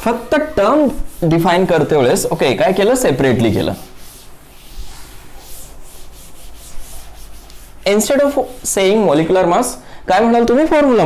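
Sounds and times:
cloth rubbing on chalkboard: 0.0s - 9.2s.

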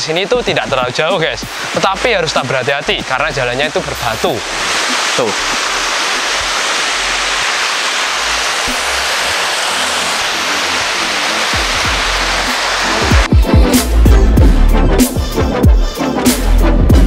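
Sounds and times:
waterfall rushing: 0.0s - 14.4s.

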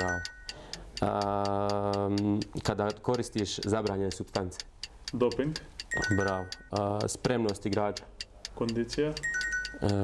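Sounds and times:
stopwatch ticking: 0.0s - 10.0s.

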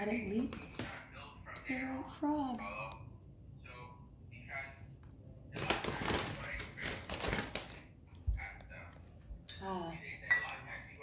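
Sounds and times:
grocery bags rustling and crinkling: 5.6s - 7.9s.

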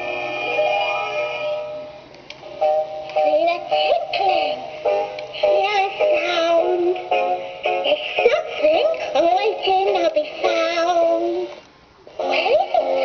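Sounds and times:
toy character voice singing: 12.2s - 13.0s.

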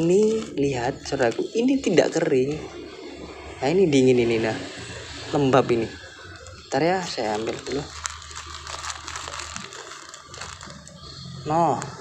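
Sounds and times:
plastic bag crinkling: 0.0s - 1.4s, 6.2s - 12.0s.

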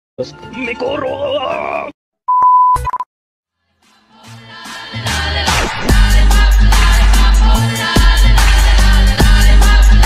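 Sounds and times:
electronic beep: 2.3s - 3.1s.

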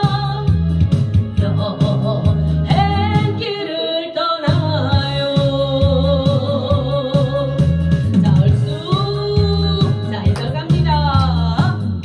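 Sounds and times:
bass and drum accompaniment: 0.0s - 3.7s, 4.4s - 12.0s
woman singing into a microphone: 0.0s - 12.0s.

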